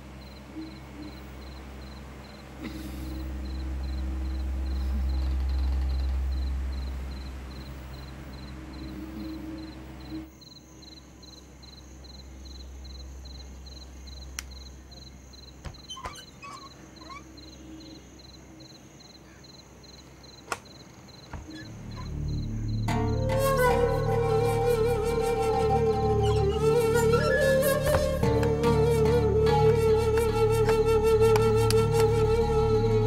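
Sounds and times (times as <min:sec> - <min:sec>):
low hum: 0:00.0 - 0:10.3, 0:21.5 - 0:33.0
crickets chirping: 0:00.0 - 0:33.0.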